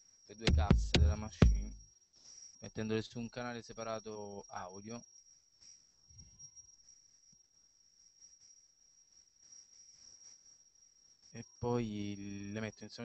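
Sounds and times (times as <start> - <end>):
faint high-pitched electronic whine: 0.0 - 13.0
faint low bump: 0.5 - 1.8.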